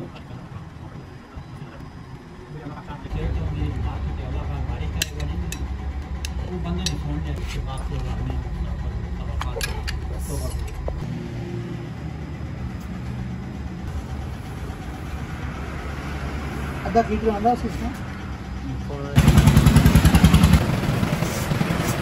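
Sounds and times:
low mechanical hum: 0.0 - 16.7.

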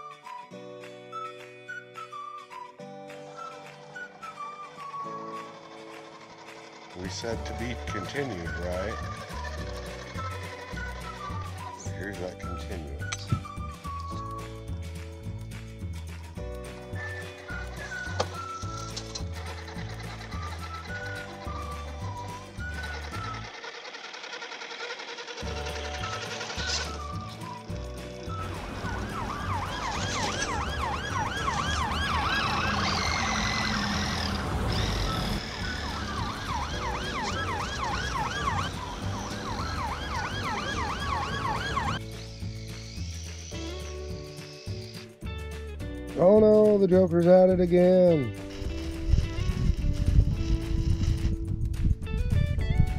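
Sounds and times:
police siren yelping: 3.2 - 11.8, 17.5 - 42.1.

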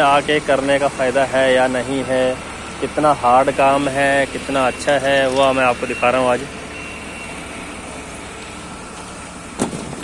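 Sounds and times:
distant machinery rumble and hiss: 0.0 - 10.0.

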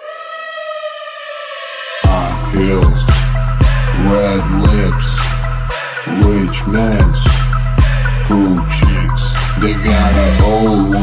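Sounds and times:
sustained siren-like synth tone: 0.0 - 4.3.

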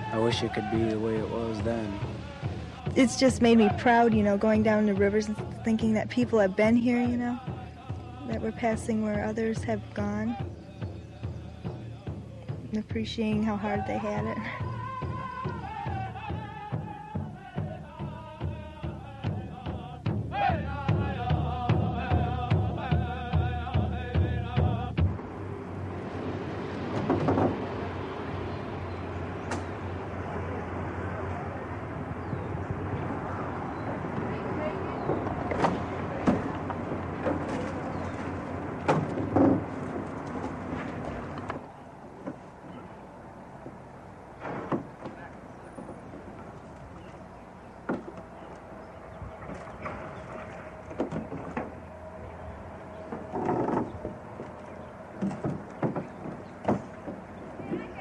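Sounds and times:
canoe hull scraping: 0.0 - 58.0
low hum: 0.0 - 58.0
branches rustling and knocking: 25.9 - 28.3, 32.0 - 58.0.

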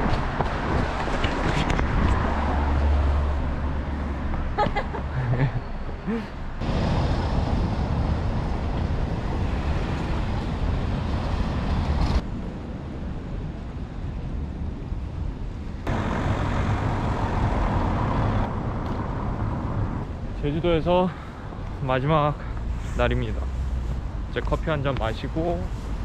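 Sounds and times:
street traffic rush: 0.0 - 26.0.

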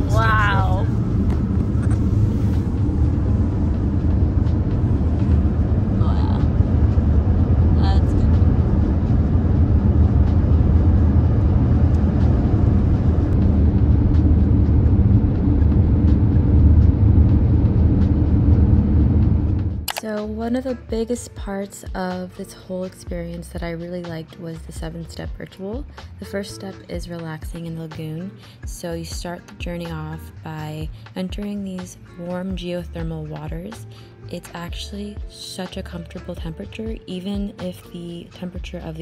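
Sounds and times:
car cabin road noise: 0.0 - 20.2.

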